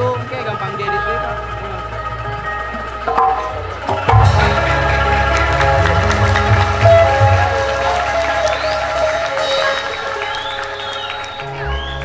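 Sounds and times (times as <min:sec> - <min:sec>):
arranger keyboard chord and bass: 0:00.9 - 0:09.0
applause: 0:04.1 - 0:12.0.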